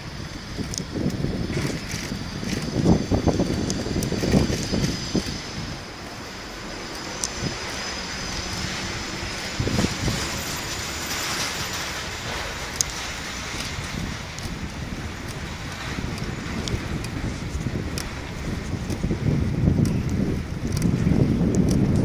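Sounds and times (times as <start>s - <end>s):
bicycle riding rumble: 0.0s - 22.0s.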